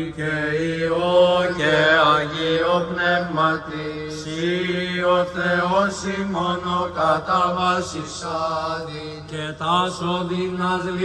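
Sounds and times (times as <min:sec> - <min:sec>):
men chanting a prayer: 0:00.0 - 0:11.0.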